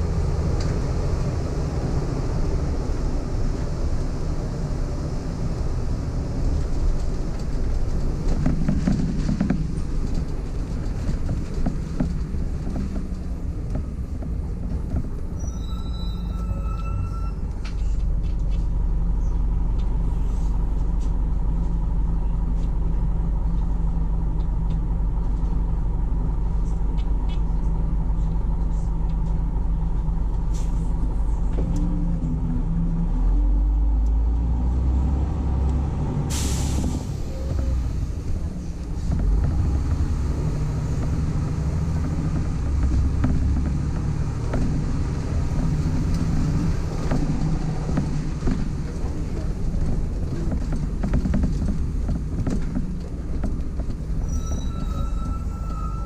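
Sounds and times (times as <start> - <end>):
bus diesel engine: 0.0 - 56.0
air brake hiss: 36.3 - 37.0.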